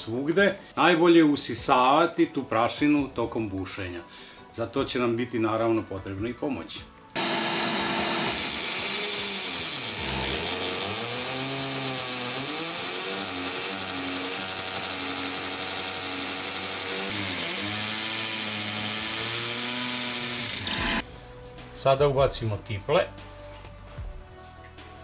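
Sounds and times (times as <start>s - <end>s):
electric drill boring into wall: 7.2s - 21.0s
handheld vacuum whining: 7.2s - 21.0s.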